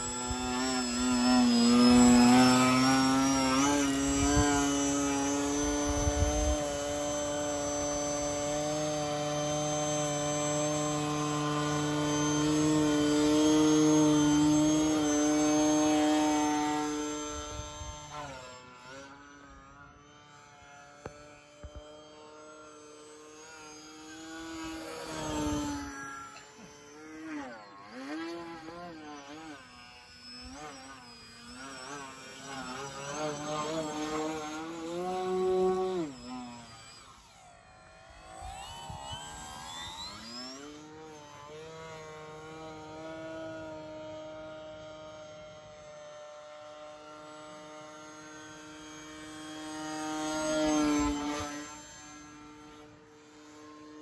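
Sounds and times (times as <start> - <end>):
electric model plane motor whining: 0.0 - 54.0.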